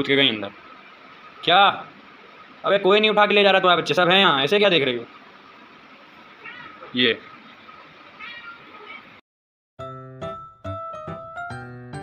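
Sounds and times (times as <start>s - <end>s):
kitten mewing: 6.4s - 7.0s, 8.2s - 9.2s
piano music: 9.8s - 12.0s.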